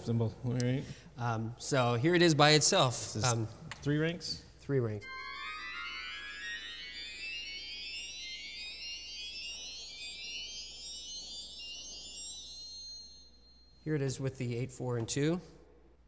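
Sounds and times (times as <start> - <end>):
high organ pipes rising scale: 5.0 - 14.8.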